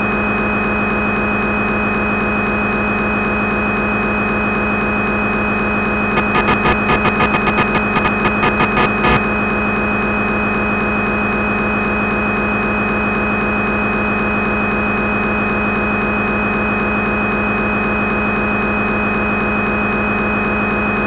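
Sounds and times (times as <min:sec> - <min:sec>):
motor hum with tones: 0:00.0 - 0:21.0
rapid high ticking: 0:05.4 - 0:09.2
rapid pulsing: 0:05.4 - 0:09.2.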